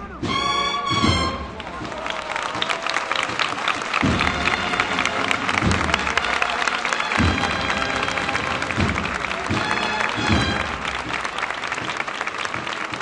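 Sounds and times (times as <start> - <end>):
music: 0.0 - 13.0
crowd applauding: 0.5 - 13.0.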